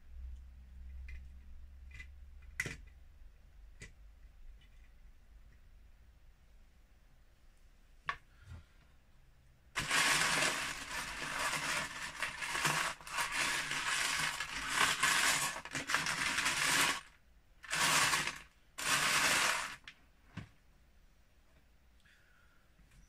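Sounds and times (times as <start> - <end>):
plastic pieces rattling in tub: 9.8 - 19.9.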